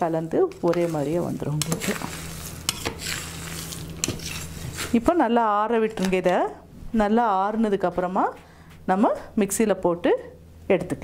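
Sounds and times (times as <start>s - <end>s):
dry grains rustling on steel plate: 0.0s - 5.2s.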